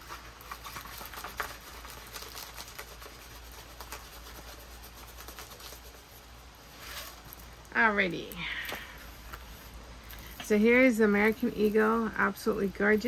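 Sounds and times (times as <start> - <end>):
rustling and crinkling packaging: 0.0 - 13.0.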